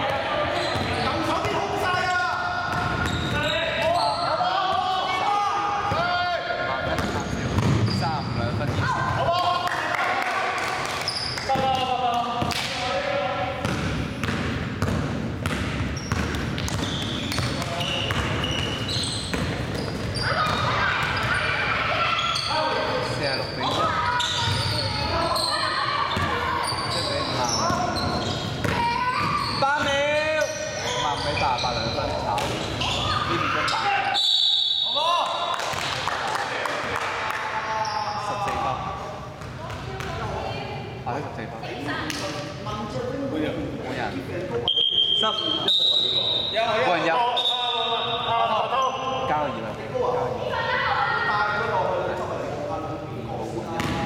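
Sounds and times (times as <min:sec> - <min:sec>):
basketball bouncing: 0:07.0 - 0:07.9, 0:13.6 - 0:18.7, 0:19.3 - 0:21.4.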